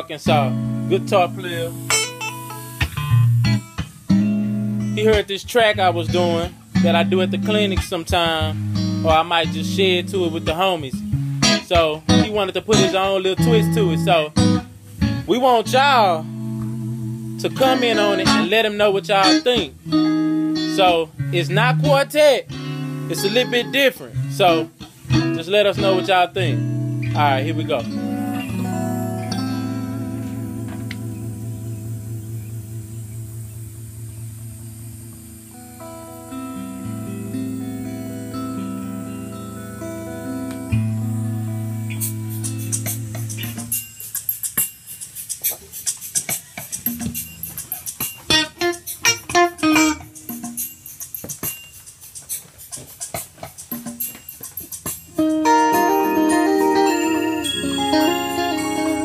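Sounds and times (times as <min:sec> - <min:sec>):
electric guitar: 0:00.0 - 0:44.4, 0:45.3 - 0:51.5, 0:52.4 - 0:59.0
backing track with bass: 0:00.0 - 0:59.0.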